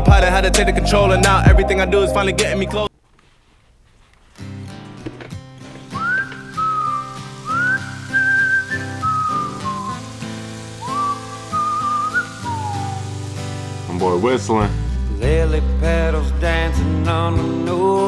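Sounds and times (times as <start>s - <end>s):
acoustic guitar: 0.0s - 2.9s, 4.3s - 18.0s
whistled melody: 0.2s - 2.9s, 5.8s - 13.9s.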